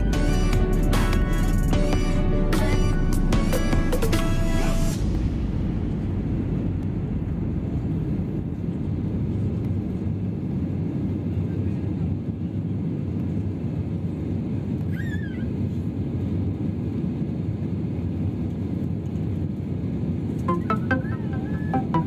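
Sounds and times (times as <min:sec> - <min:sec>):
jet engine cabin rumble: 0:00.0 - 0:22.0.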